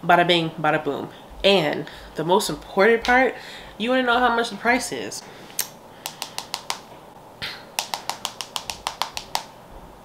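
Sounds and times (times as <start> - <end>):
nails tapping on phone screen: 6.0 - 6.9, 7.8 - 9.5.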